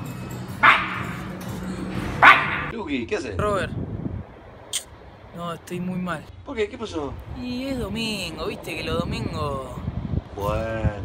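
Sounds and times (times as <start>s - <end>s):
background music: 0.0s - 2.7s
dog barking: 0.6s - 1.2s, 2.2s - 2.7s.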